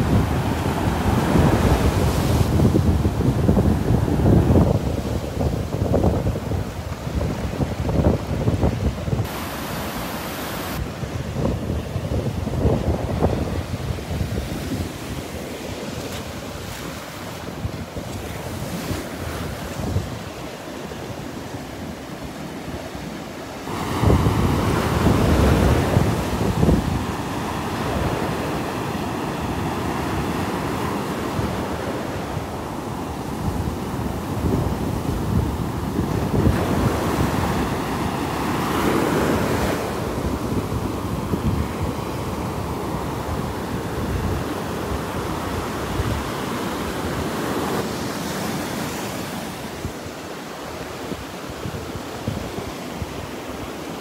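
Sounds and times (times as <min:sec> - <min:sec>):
surf breaking on beach: 0:00.0 - 0:20.3, 0:23.5 - 0:51.5
wind buffeting microphone: 0:00.0 - 0:20.5, 0:23.7 - 0:50.2.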